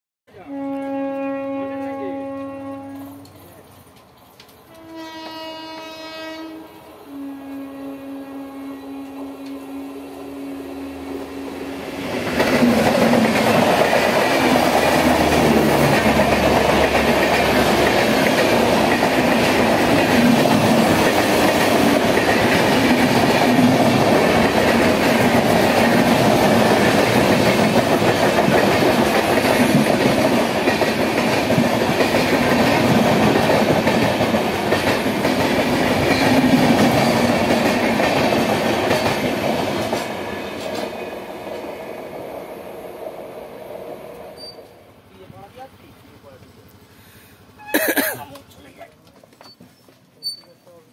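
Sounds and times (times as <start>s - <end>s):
train wheels on rails: 0.6s - 50.9s.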